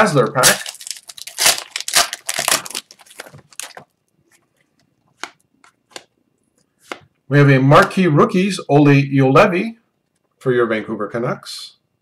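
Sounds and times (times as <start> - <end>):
foil wrapper tearing and crinkling: 0.4 - 3.8.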